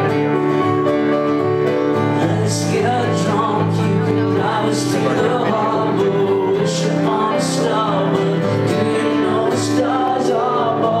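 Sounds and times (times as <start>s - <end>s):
piano chords: 0.0s - 11.0s
man singing: 1.9s - 11.0s.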